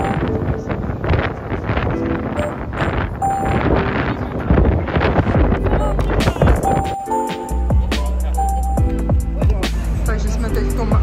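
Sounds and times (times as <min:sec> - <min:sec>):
background music: 0:00.0 - 0:11.0
wind buffeting microphone: 0:00.0 - 0:11.0.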